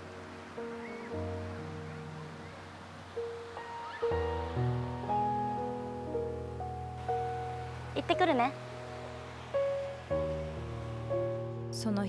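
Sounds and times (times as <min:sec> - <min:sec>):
slow instrumental music: 0:00.0 - 0:12.0.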